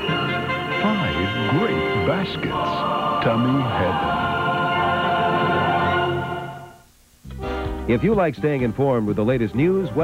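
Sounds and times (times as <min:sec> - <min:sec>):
group of voices singing jingle: 0:00.0 - 0:06.8.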